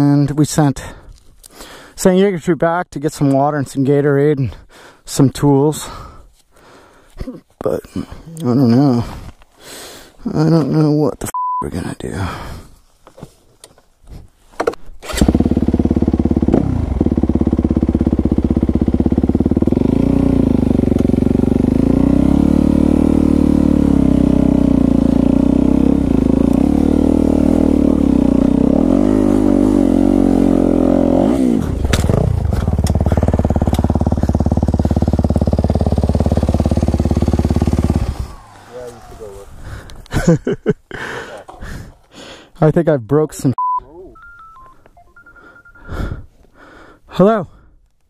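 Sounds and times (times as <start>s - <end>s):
dirt bike engine revving: 15.0s - 40.6s.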